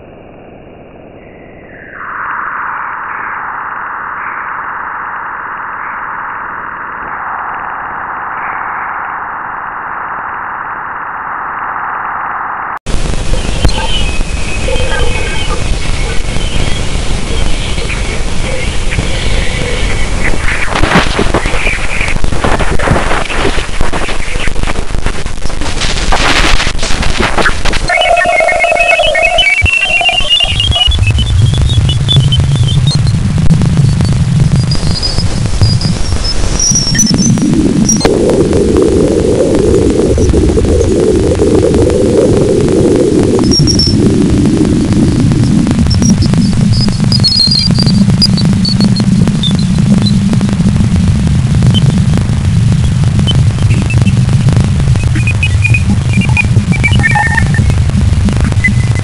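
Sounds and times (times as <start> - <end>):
electronic hiss and crackle: 0.0 - 59.0
low rumbling noise: 0.0 - 59.0
whistling tones: 27.9 - 33.1, 55.2 - 57.7.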